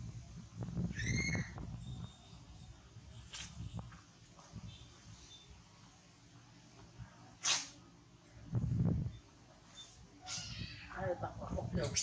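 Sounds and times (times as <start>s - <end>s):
monkey squeaky mewing call: 0.9s - 1.6s, 9.8s - 10.9s.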